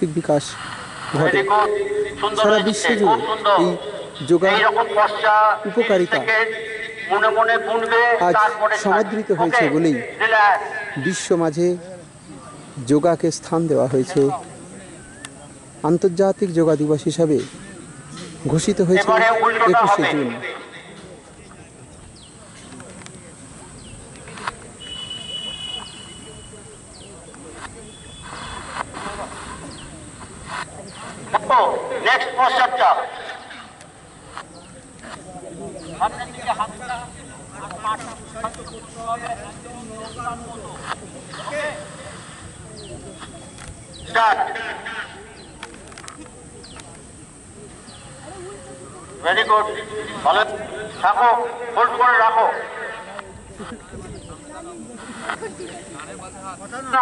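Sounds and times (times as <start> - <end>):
hissing rustle: 0.0 - 3.5, 20.8 - 57.0
crowd murmur: 0.0 - 57.0
distant voices chattering: 0.0 - 57.0
bird chirps: 24.8 - 28.8.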